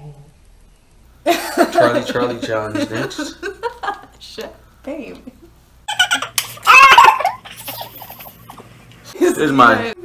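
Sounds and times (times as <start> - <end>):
people laughing: 1.3 - 4.1.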